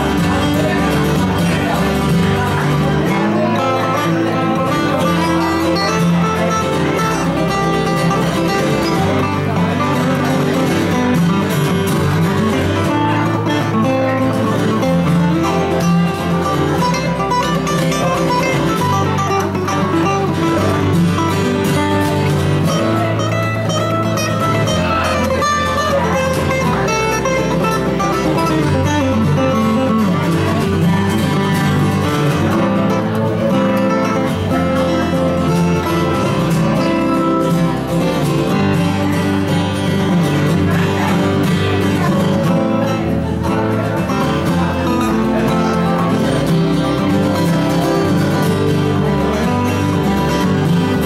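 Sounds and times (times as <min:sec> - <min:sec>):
bass line: 0:00.0 - 0:51.0
dobro: 0:00.0 - 0:51.0
strummed acoustic guitars: 0:00.0 - 0:51.0.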